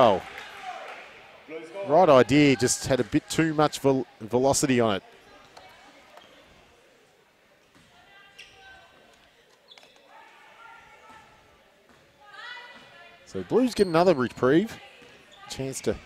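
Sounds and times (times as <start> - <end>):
sneaker squeaks: 5.2 - 6.6, 7.8 - 13.0, 13.6 - 16.0.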